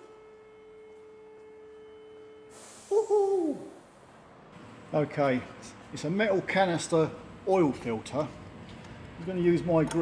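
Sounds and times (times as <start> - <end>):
hiss: 2.5 - 4.0
man's wordless hoo: 2.9 - 3.8.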